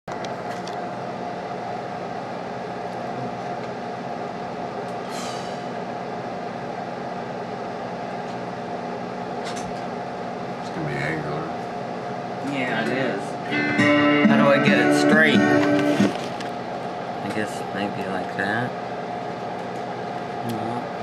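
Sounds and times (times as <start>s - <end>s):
guitar amplifier hum and hiss: 8.1s - 21.0s.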